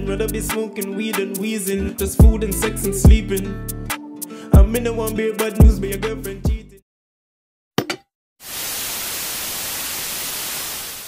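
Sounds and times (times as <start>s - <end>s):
television static hiss: 8.5s - 11.0s.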